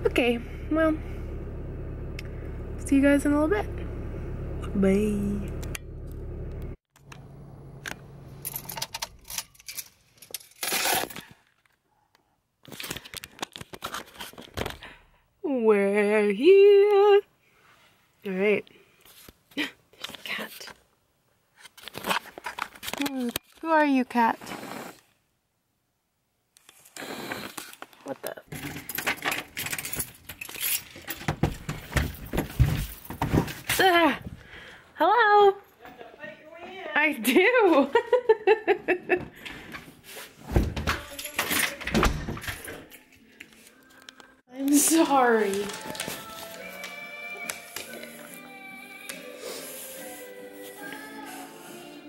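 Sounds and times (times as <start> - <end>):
rattles and handling noise: 7.8 - 11.8, 12.6 - 14.9, 21.6 - 23.7, 27.5 - 34.4, 39.2 - 48.1
car keys jangling: 8.4 - 10.6, 28.6 - 31.3
clattering and jingling handling: 28.5 - 33.8.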